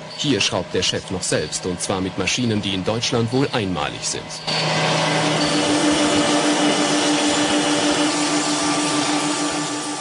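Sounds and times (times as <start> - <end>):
machine tool cutting metal: 2.4 - 10.0.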